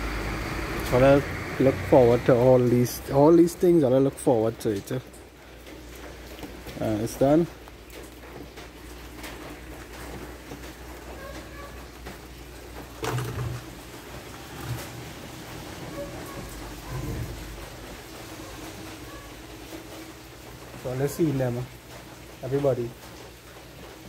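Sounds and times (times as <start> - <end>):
light rain falling: 0.0 - 24.0.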